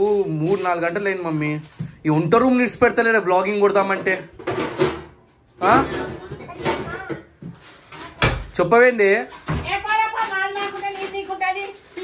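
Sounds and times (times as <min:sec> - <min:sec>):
cupboard clattering: 0:00.0 - 0:12.0.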